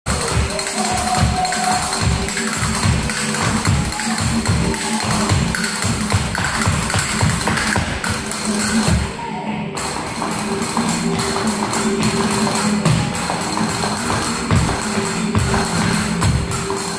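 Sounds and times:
low thumping beat: 0:00.1 - 0:09.1, 0:09.9 - 0:16.8
flamenco music: 0:00.1 - 0:16.9.

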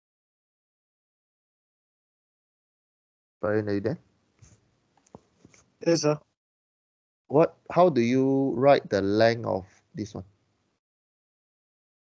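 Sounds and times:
man answering: 0:03.4 - 0:04.0, 0:05.8 - 0:06.2, 0:07.3 - 0:10.2
faint clicks and rustles: 0:04.4 - 0:05.8.

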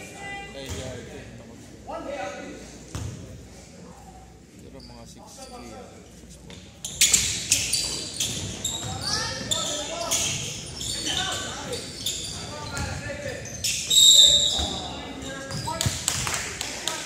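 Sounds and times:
sneakers squeaking: 0:04.7 - 0:16.0.

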